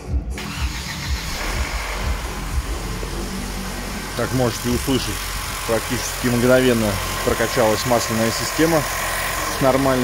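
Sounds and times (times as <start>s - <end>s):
car engine running: 0.3s - 10.0s.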